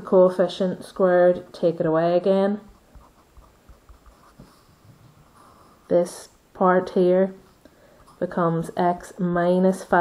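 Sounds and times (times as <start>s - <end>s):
pen scratching on paper: 2.7s - 4.7s.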